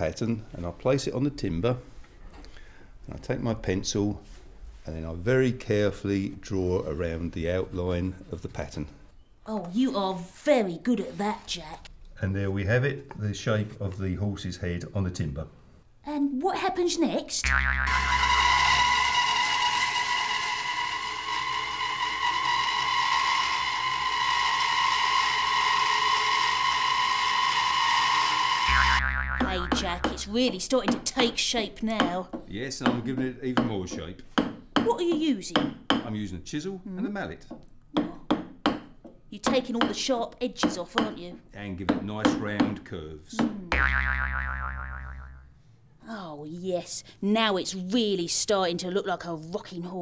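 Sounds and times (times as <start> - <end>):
cartoon boing twang: 17.4 - 19.2, 28.7 - 30.3, 43.6 - 45.5
band saw cutting wood: 17.9 - 30.3.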